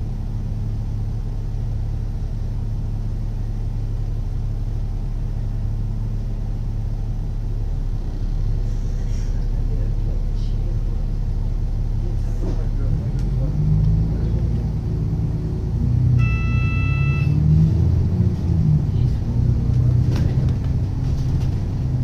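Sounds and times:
bus engine rumbling: 0.0 - 22.0
electronic beep: 16.2 - 17.4.

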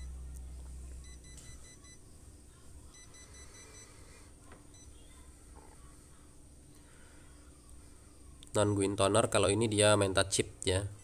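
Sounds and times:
faint high electronic tones: 0.0 - 8.0
copier low hum: 0.0 - 11.0.

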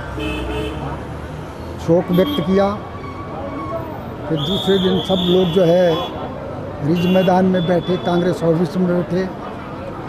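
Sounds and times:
man talking: 6.8 - 9.3
vehicle horn toot: 6.9 - 8.0.

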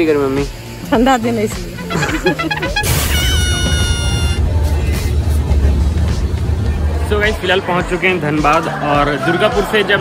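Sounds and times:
high held tone: 1.8 - 4.4.

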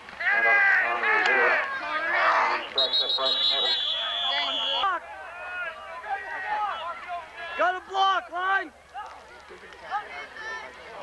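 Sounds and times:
spectators shouting: 0.2 - 11.0
referee's whistle blast: 2.7 - 4.8.

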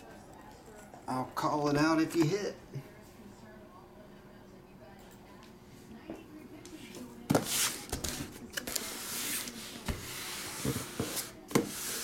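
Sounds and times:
cardboard rubbing on tabletop: 7.3 - 12.0.

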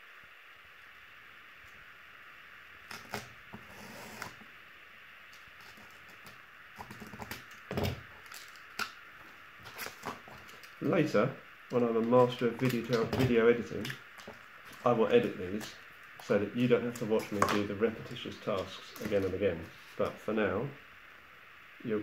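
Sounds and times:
steady faint hiss: 0.0 - 22.0
knife cutting cardboard: 2.9 - 4.4.

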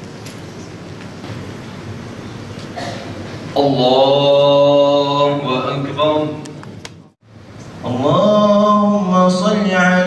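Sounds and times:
low murmur of hall: 0.0 - 10.0
man chanting over loudspeaker: 3.6 - 6.6, 7.8 - 10.0.

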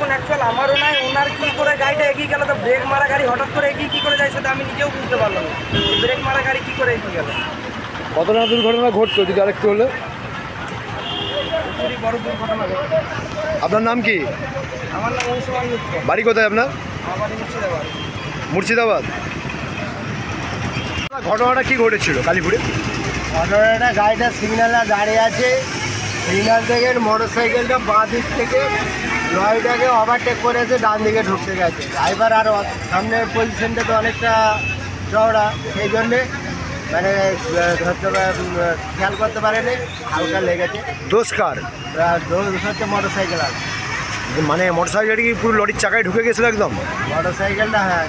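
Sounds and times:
road traffic rumble: 0.0 - 48.0
man talking: 11.5 - 17.9, 44.3 - 48.0.

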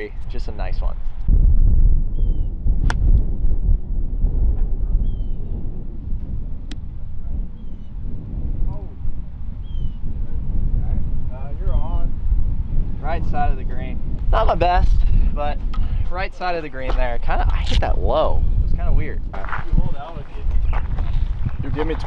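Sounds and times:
wind buffeting microphone: 0.0 - 22.0
golf club striking ball: 2.8 - 3.1.

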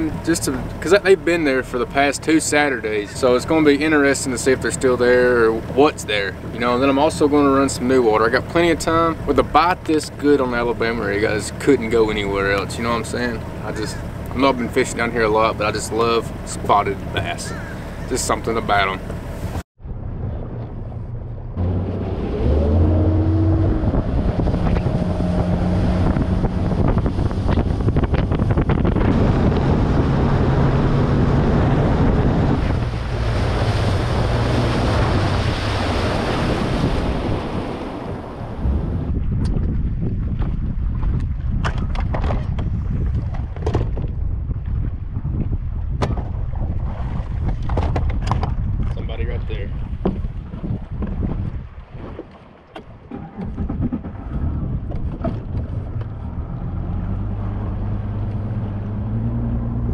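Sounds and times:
outboard motor running: 0.0 - 59.9
wind rushing on microphone: 0.0 - 59.9.

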